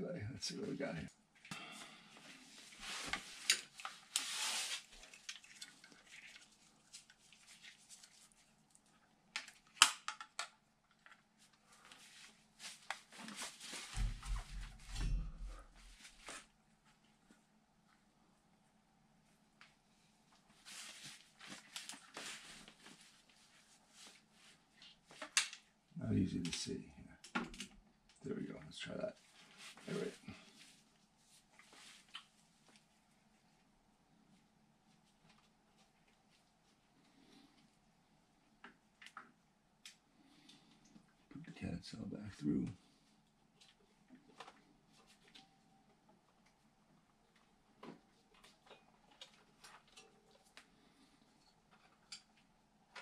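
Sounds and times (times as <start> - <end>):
rustling and crinkling: 1.3 - 25.8, 29.0 - 41.5, 42.6 - 53.0.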